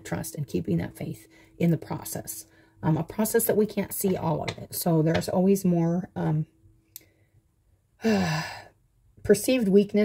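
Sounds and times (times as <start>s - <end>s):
woman sighing: 8.0s - 8.8s.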